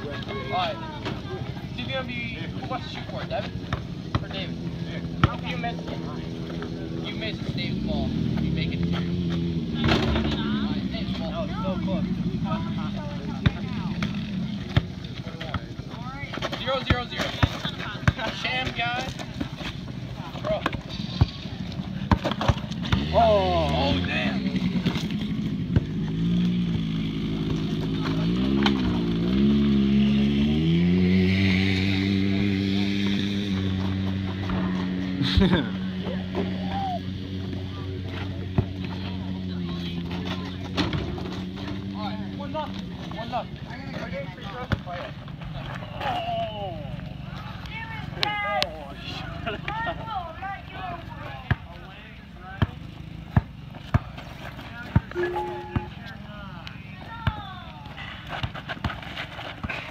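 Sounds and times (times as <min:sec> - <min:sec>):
basketball bouncing on hard ground: 0:02.9 - 0:06.1, 0:13.2 - 0:23.3, 0:24.6 - 0:29.0, 0:38.3 - 0:39.1, 0:43.9 - 0:45.1, 0:51.3 - 0:51.9, 0:52.5 - 0:56.2, 0:56.8 - 0:59.9.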